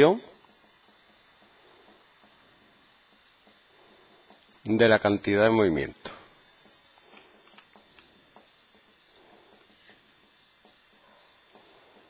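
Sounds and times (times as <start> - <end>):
marker scratching on whiteboard: 0.0 - 4.7, 7.8 - 12.0.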